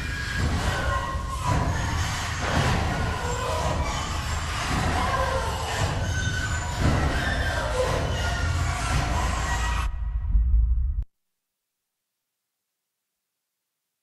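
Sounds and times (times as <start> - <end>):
metallic squeals and screeches: 0.0 - 9.9
steady low rumble: 9.8 - 11.1.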